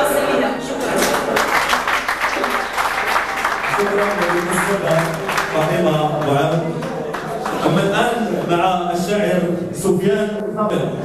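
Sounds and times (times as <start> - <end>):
audience applauding: 0.9 - 8.7.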